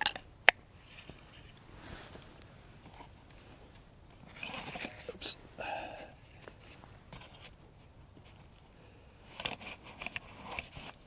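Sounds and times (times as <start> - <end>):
crackly rustling of items: 0.0 - 11.0.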